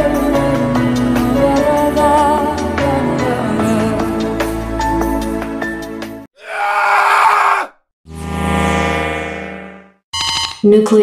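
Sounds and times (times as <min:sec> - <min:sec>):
music: 0:00.0 - 0:06.3
people screaming: 0:06.4 - 0:07.8.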